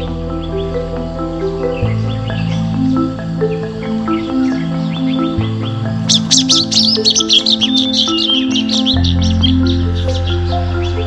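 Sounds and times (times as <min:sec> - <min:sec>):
birds chirping: 0:00.0 - 0:11.0
low bass note: 0:00.0 - 0:11.0
soft mallet music: 0:00.0 - 0:11.0.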